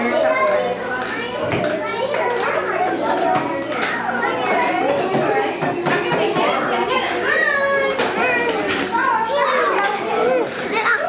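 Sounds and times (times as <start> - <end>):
young children talking and calling: 0.0 - 11.0.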